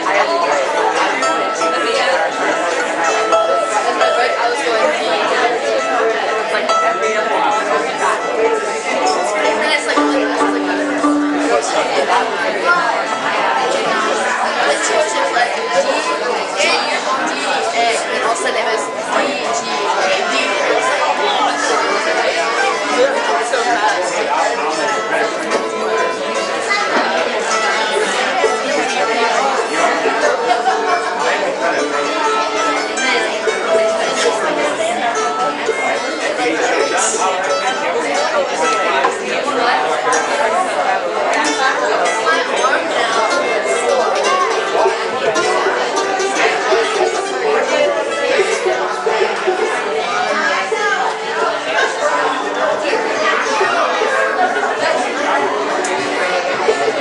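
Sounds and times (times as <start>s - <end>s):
string band playing: 0.0s - 15.5s, 18.3s - 40.5s, 41.4s - 57.0s
chatter of people talking: 0.0s - 57.0s.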